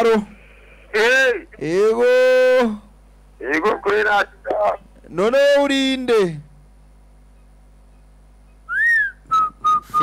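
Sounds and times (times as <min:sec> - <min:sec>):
person whistling: 0:08.7 - 0:10.0.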